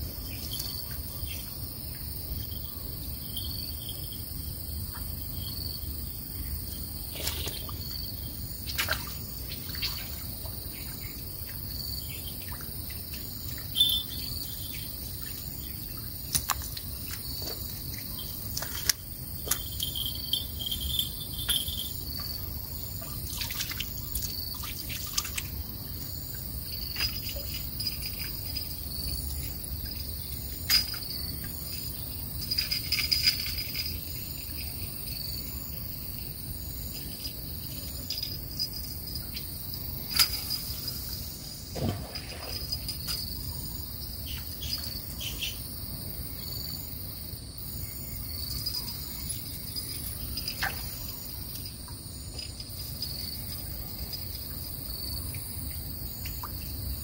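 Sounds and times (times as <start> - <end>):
insect chorus chirping: 0.0 - 57.0.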